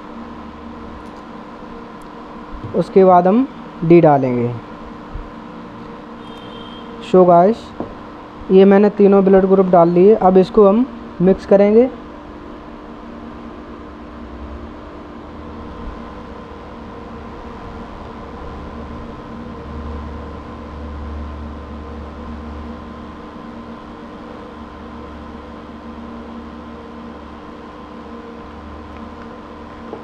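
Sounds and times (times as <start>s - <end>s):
machine hum: 0.0s - 30.0s.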